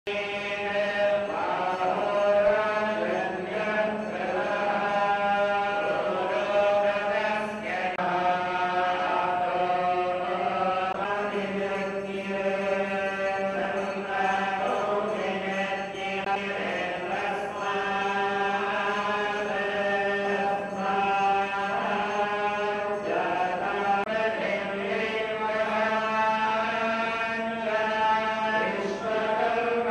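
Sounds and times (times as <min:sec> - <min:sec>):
group chanting in unison: 0:00.1 - 0:29.9.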